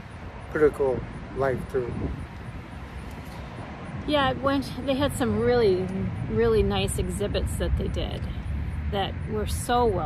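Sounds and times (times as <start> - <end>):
distant city traffic rumble: 0.0 - 10.0.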